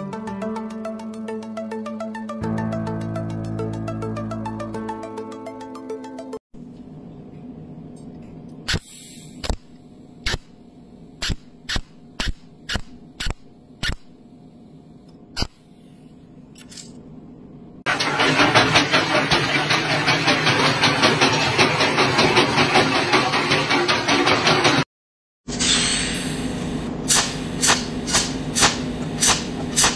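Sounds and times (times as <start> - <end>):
faint hum: 6.6 - 17.8
spot welder electric snaps: 8.6 - 10.6, 11.2 - 14.2, 15.1 - 15.6, 27.1 - 29.9
coal scraper and conveyor clattering: 17.9 - 24.8.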